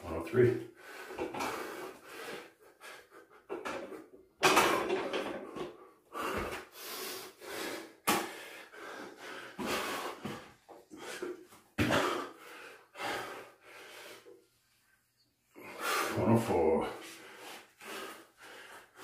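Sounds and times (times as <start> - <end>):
man breathing hard: 0.7 - 3.8, 5.1 - 14.4, 15.6 - 16.2, 16.9 - 19.0.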